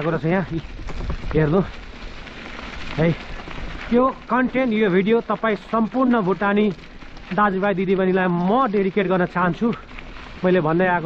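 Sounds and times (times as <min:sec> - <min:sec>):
man talking: 0:00.0 - 0:00.7, 0:01.3 - 0:01.7, 0:03.0 - 0:03.2, 0:03.9 - 0:09.8, 0:10.4 - 0:11.0
bike tyres rolling on dirt: 0:00.0 - 0:11.0
wind on microphone: 0:00.4 - 0:01.9.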